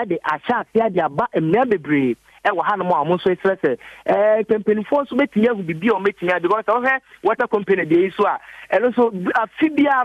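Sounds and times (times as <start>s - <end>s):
man speaking over telephone: 0.0s - 10.0s.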